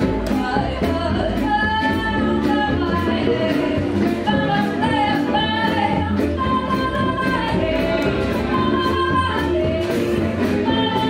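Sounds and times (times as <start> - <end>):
double bass: 0.0 - 11.0.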